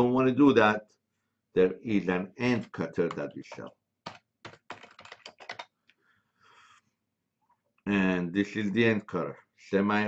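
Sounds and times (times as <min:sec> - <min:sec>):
typing on computer keyboard: 0:03.1 - 0:06.0.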